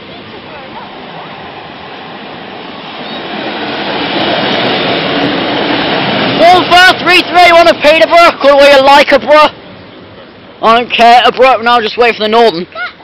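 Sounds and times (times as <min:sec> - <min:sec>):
train wheels on rails: 0:00.0 - 0:10.5
diesel train engine: 0:00.0 - 0:12.6.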